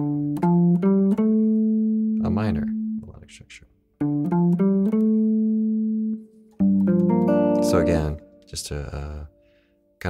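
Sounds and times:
clean electric guitar notes: 0.0 - 3.2, 4.0 - 9.5.

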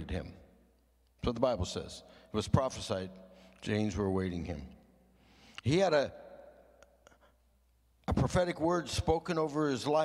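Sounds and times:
man's voice: 8.1 - 10.0.

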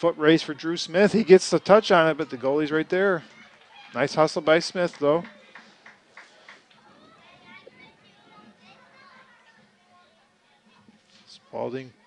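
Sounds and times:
distant shouts and chatter: 0.0 - 12.0.

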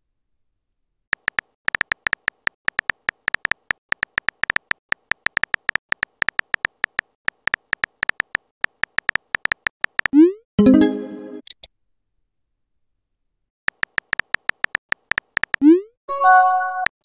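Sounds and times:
keystroke clicks: 1.2 - 10.2, 13.7 - 15.7.

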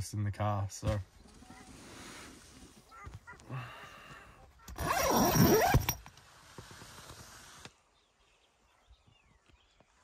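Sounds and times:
tent zipper rasping: 4.7 - 7.7.

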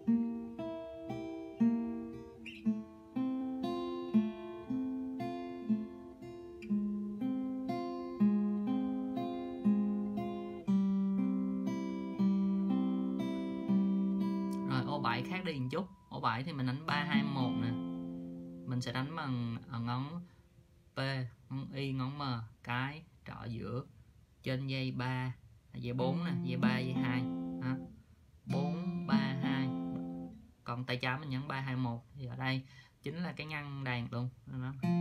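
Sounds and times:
fingerpicked acoustic guitar: 0.0 - 20.4, 25.8 - 31.9, 33.3 - 35.0
man talking: 14.6 - 17.8, 18.7 - 20.3, 21.0 - 27.9, 28.5 - 30.0, 30.7 - 34.9.

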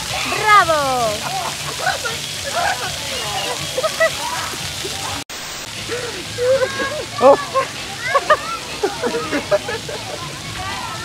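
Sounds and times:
fountain jets hissing: 0.0 - 11.0
scattered voices: 0.0 - 11.0.

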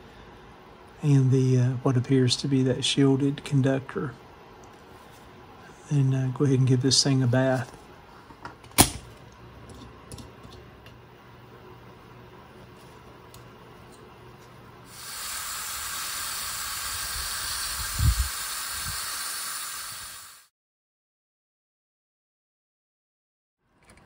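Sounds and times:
steady hiss: 14.9 - 20.5.

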